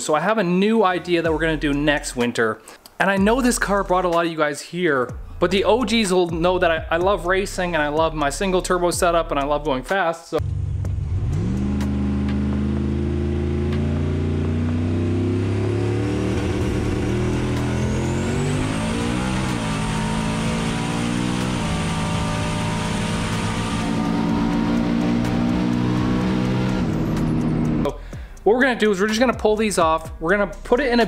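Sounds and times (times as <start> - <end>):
high whine: 10.4 - 27.9
car engine accelerating hard: 10.4 - 28.0.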